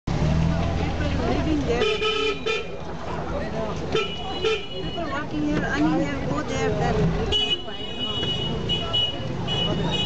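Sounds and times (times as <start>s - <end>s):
people's voices: 0.1s - 10.0s
vehicle horn honking: 1.8s - 2.8s, 4.0s - 5.1s.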